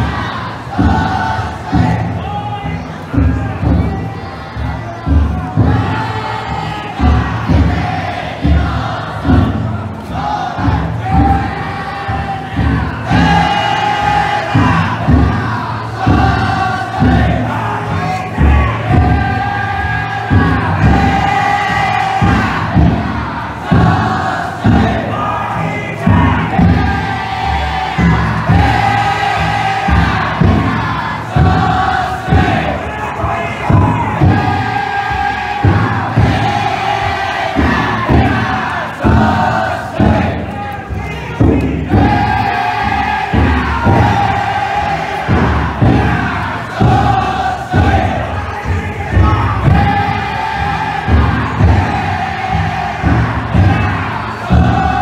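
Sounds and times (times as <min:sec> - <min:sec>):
group chanting in unison: 0:00.0 - 0:55.0
low drum beats: 0:00.0 - 0:55.0.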